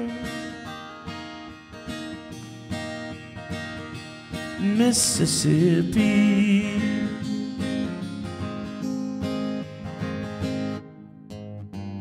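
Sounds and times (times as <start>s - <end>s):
acoustic guitars strummed and picked: 0.0s - 12.0s.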